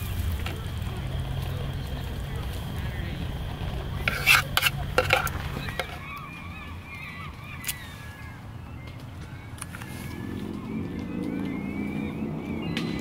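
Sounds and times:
birds calling: 0:00.0 - 0:13.0
steady low hum: 0:00.0 - 0:13.0.

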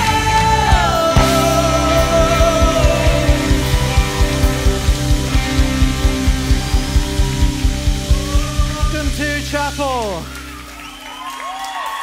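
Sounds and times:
keyboard chords: 0:00.0 - 0:11.2
low pulsing beat: 0:00.7 - 0:10.4.

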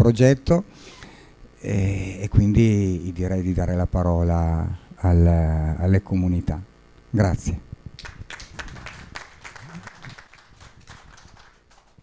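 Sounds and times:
audience applauding: 0:08.0 - 0:12.0.

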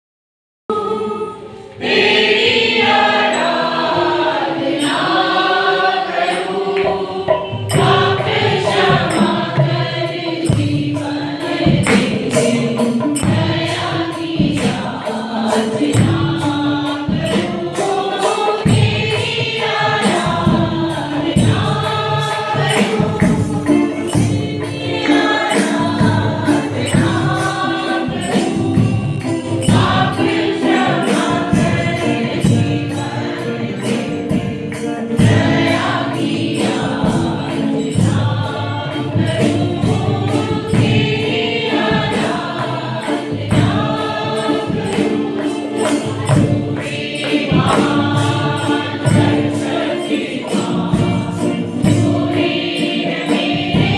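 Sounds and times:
mixed choir singing: 0:00.7 - 0:53.9
rhythmic percussion beat: 0:01.8 - 0:53.9.

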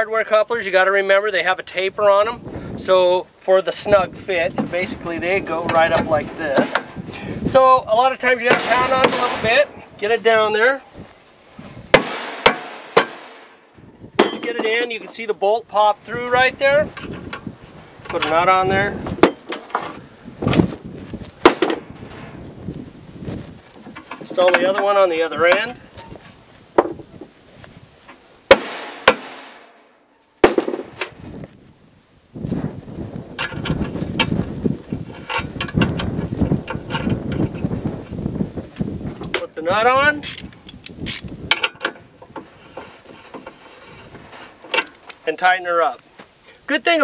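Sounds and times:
rattling and scraping parts: 0:04.3 - 0:07.6, 0:08.2 - 0:15.2, 0:16.9 - 0:27.3, 0:33.3 - 0:38.2, 0:40.2 - 0:45.2
hammer striking: 0:08.5 - 0:09.7, 0:12.0 - 0:14.8, 0:21.4 - 0:22.1, 0:28.5 - 0:30.9
sharp knocks on coupler: 0:11.9 - 0:14.8, 0:21.4 - 0:22.1, 0:28.5 - 0:29.8, 0:30.4 - 0:31.2.

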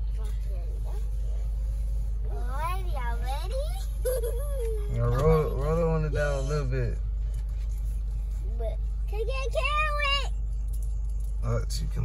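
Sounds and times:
car idling from inside cabin: 0:00.0 - 0:12.0.

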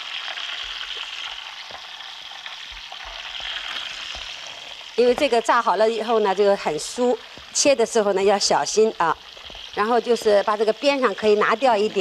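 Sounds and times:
faint crackles: 0:00.0 - 0:12.0
oil sizzling in a wok: 0:00.0 - 0:12.0.

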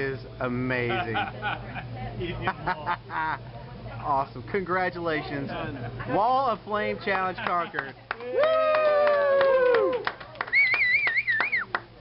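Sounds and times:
hand claps: 0:07.4 - 0:11.9
men cheering woo: 0:08.2 - 0:11.7
warbling whistle: 0:10.5 - 0:11.8.

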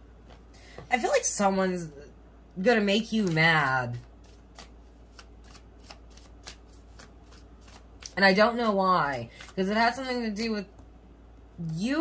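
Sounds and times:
cards being shuffled: 0:03.1 - 0:09.7.

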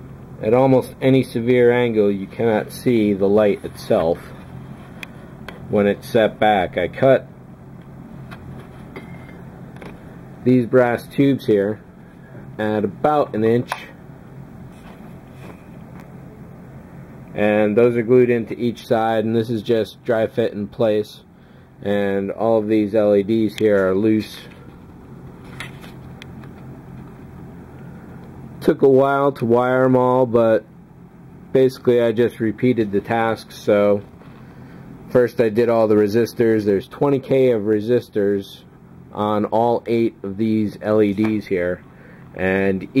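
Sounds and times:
steady low hum: 0:00.0 - 0:43.0.

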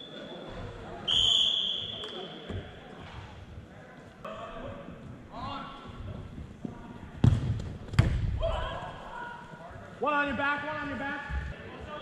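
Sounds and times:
ball being kicked thuds: 0:07.2 - 0:08.4.

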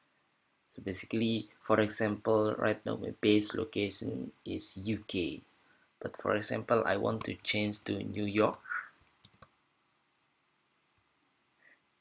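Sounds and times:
computer keyboard clicks: 0:07.1 - 0:07.6, 0:08.5 - 0:09.5.

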